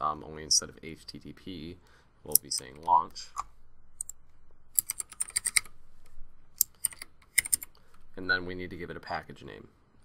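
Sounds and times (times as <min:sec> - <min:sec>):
typing on computer keyboard: 0:04.8 - 0:05.7, 0:06.6 - 0:07.7.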